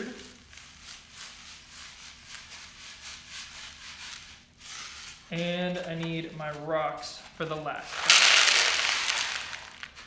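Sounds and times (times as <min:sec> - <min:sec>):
sand pouring into plastic tray: 0:07.9 - 0:10.0.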